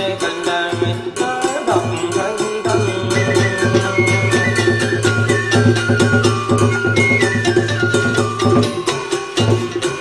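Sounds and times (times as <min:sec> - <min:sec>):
drum strokes: 0:00.0 - 0:10.0
held melodic line: 0:00.0 - 0:10.0.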